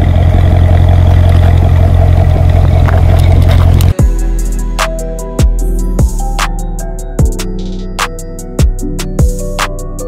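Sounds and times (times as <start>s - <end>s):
car engine idling: 0.0s - 9.7s.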